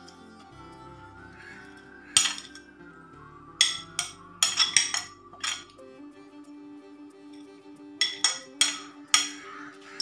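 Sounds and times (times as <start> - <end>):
faint background music: 0.0 - 10.0
spoon clinking on plate: 2.2 - 2.6, 3.6 - 5.8, 8.0 - 9.6.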